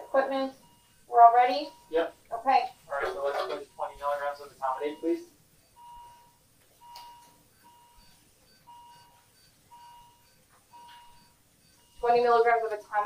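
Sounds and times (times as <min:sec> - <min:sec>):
patient monitor beeping: 0:00.0 - 0:13.0.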